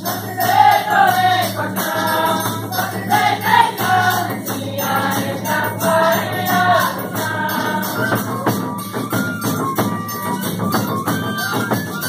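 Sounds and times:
group singing in chorus: 0.0s - 8.6s
hand drum beat: 0.0s - 12.0s
jingling percussion: 0.0s - 12.0s.

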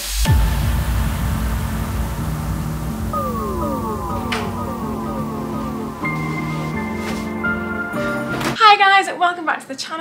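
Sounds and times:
low sustained bass: 0.2s - 8.0s
falling synth glides: 1.1s - 8.2s.

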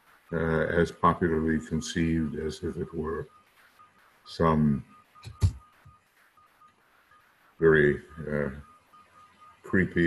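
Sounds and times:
faint high beep: 0.3s - 10.0s.

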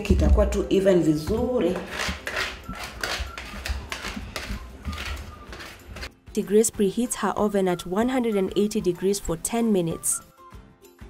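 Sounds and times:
spatula scraping cake batter: 1.7s - 6.1s.

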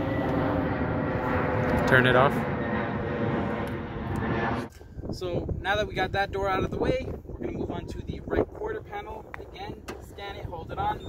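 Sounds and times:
airplane engine drone overhead: 0.0s - 11.0s.

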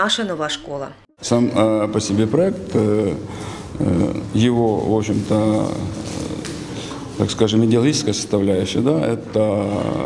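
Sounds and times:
man saying uhh: 2.8s - 4.4s.

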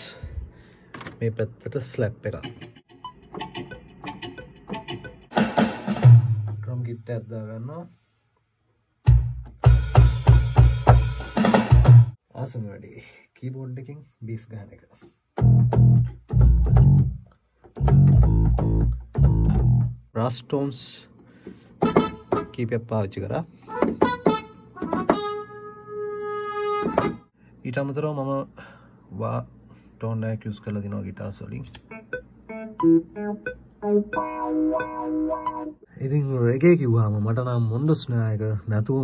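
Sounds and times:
keyboard bass notes: 2.3s - 6.6s, 15.4s - 20.1s, 31.8s - 35.8s
electric guitar notes and chord: 17.8s - 19.9s, 31.8s - 35.8s.

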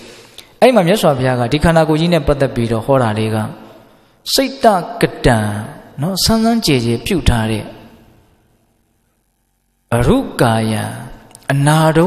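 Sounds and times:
faint room hum: 0.0s - 12.0s
man speaking: 0.6s - 8.0s, 9.9s - 12.0s.

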